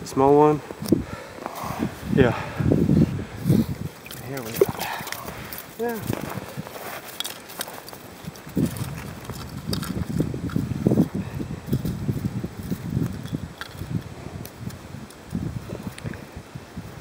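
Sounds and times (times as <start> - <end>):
fish handled on snow: 2.9 - 16.4.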